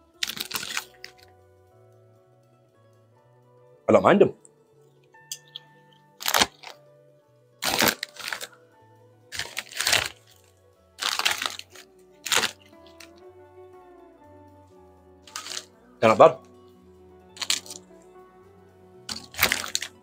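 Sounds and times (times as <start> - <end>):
background music with bass line: 0.0 - 20.0
crisp packet crinkling: 0.2 - 1.2, 6.2 - 6.8, 7.6 - 8.6, 9.3 - 10.4, 11.0 - 13.2, 15.3 - 15.7, 17.4 - 17.8, 19.1 - 20.0.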